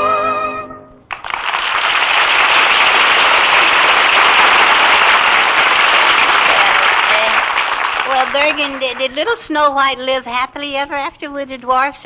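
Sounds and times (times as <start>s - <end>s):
audience applauding: 1.1s - 9.7s.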